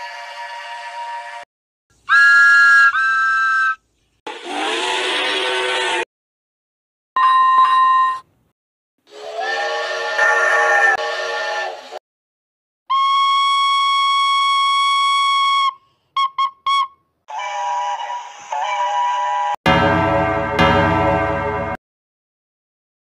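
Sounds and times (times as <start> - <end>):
steam locomotive whistle blasts: 4.4 - 6.0, 9.1 - 12.0, 12.9 - 19.6.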